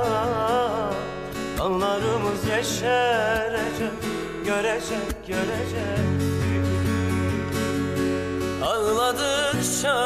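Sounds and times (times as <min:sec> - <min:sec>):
person singing with vibrato: 0:00.0 - 0:07.5, 0:08.6 - 0:10.0
acoustic guitar: 0:00.0 - 0:10.0.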